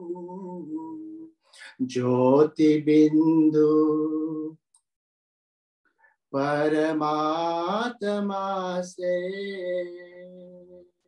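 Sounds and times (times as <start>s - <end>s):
man singing devotional song: 0.0s - 4.7s, 6.3s - 11.0s.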